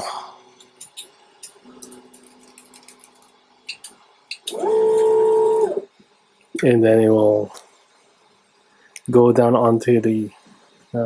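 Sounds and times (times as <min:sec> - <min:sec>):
stepper motor whine: 0:04.5 - 0:05.9.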